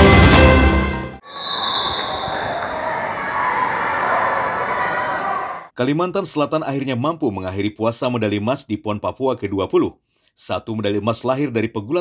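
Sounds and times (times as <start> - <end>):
crowd voices and shouts: 1.3 - 5.7.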